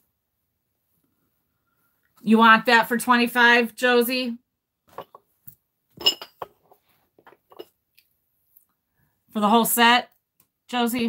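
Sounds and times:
small clink: 6.0 - 6.5.

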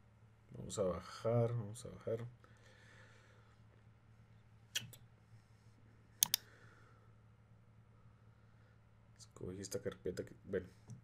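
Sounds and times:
faint low hum: 0.0 - 11.0
mouse double-clicking: 6.2 - 6.4.

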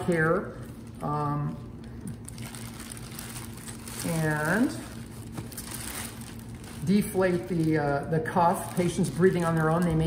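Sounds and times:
plastic sheeting crinkling: 0.0 - 10.0.

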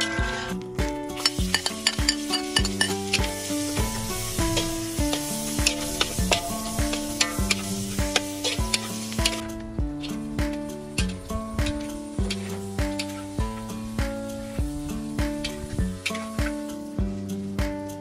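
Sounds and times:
metal spatula scraping a pan: 0.0 - 0.5, 1.2 - 9.4
background music: 0.0 - 18.0
hot oil sizzling in a wok: 1.1 - 9.4, 10.0 - 18.0.

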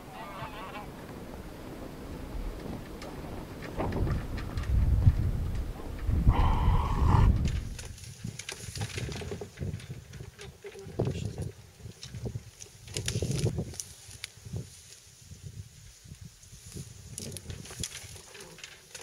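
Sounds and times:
geese honking: 0.0 - 1.1
heavy low rumble: 0.7 - 7.8.

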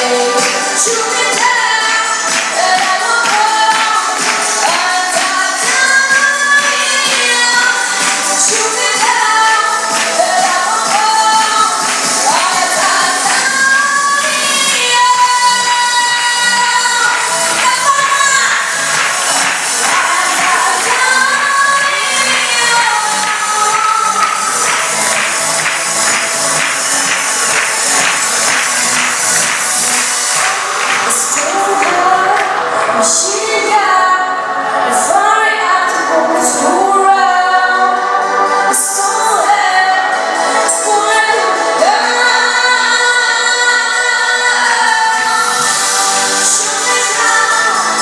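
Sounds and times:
girl singing pop song: 0.0 - 26.7, 29.4 - 48.0
accompanying music with beat: 0.0 - 48.0.

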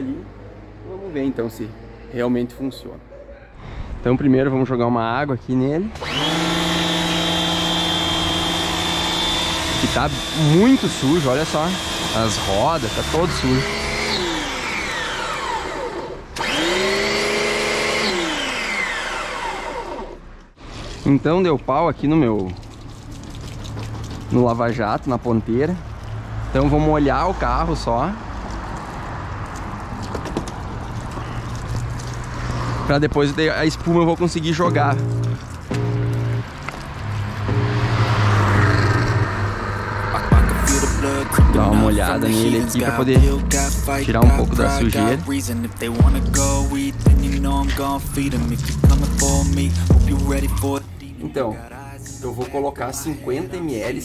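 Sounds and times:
pressure washer motor humming: 6.0 - 20.2, 40.1 - 50.8
hose spraying water on car: 7.0 - 13.9, 22.2 - 24.7, 46.3 - 50.8.

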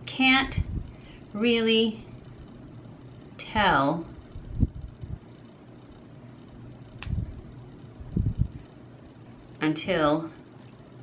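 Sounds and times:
low steady rumble: 0.0 - 11.0
dull low thumps: 8.0 - 8.6.

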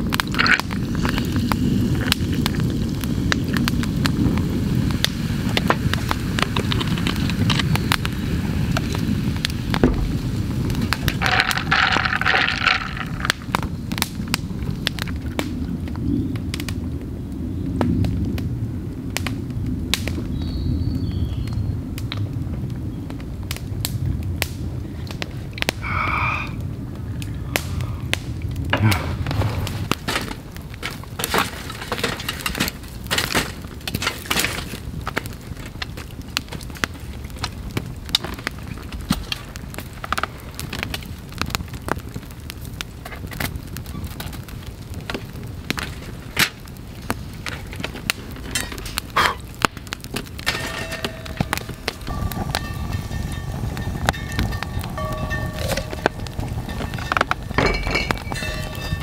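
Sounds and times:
campfire crackling and popping: 0.0 - 59.0
low rumble: 50.4 - 59.0.

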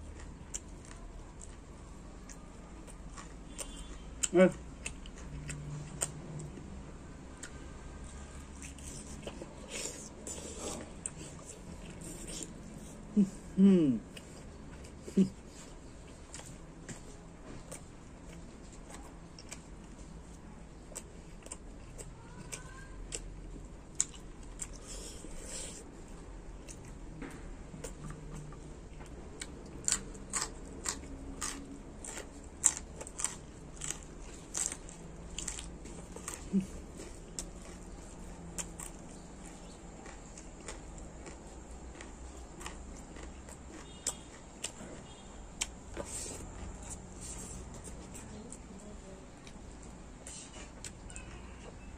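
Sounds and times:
man chewing with wet smacking: 0.0 - 51.9.

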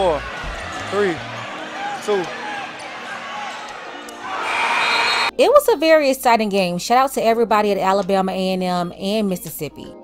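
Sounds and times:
crowd noise: 0.0 - 5.3
voices calling out: 0.0 - 5.3.

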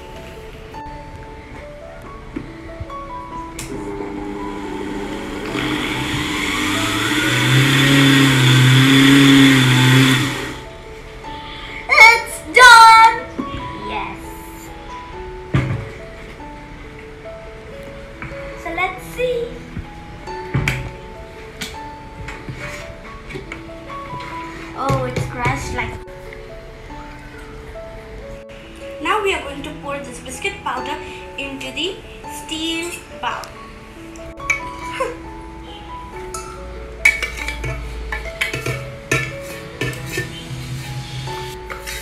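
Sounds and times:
background music: 0.0 - 42.0
electric grinder running: 3.7 - 10.6.

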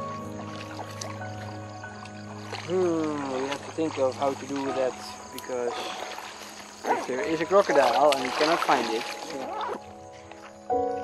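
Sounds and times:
background music held notes: 0.0 - 11.0.

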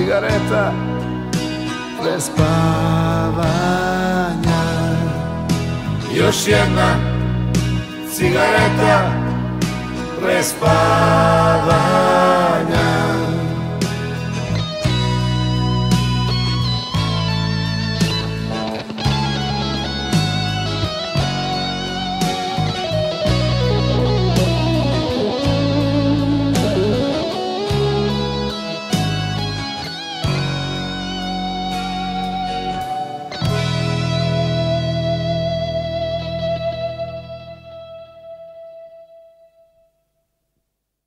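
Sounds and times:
bass and drums: 0.0 - 37.8
lead electric guitar: 0.0 - 39.9.

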